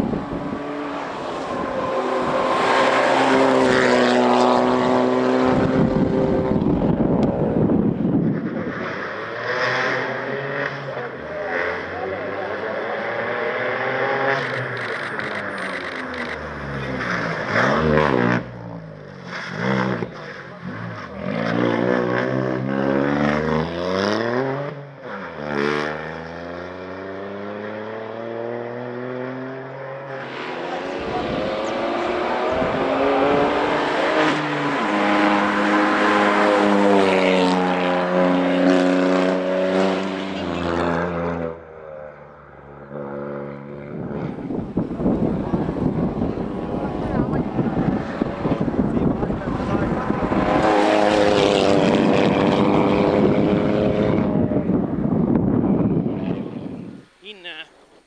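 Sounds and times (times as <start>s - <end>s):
rally car engines revving hard: 0.0s - 56.8s.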